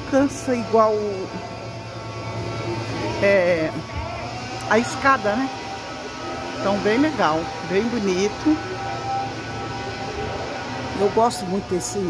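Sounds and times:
woman's voice: 0:00.0 - 0:01.4, 0:03.2 - 0:03.8, 0:04.7 - 0:05.5, 0:06.6 - 0:08.7, 0:11.0 - 0:12.0
faint background music: 0:00.0 - 0:12.0
steady low hum: 0:00.0 - 0:12.0.

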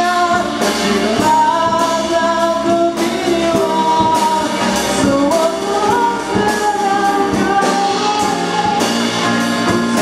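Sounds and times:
drum kit steady beat: 0:00.0 - 0:10.0
guitar: 0:00.0 - 0:10.0
sung lead vocal: 0:00.0 - 0:10.0.

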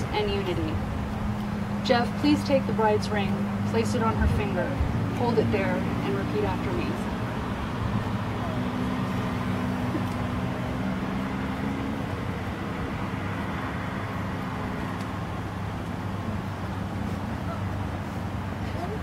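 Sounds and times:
faint outdoor background noise: 0:00.0 - 0:19.0
low engine hum: 0:00.0 - 0:19.0.

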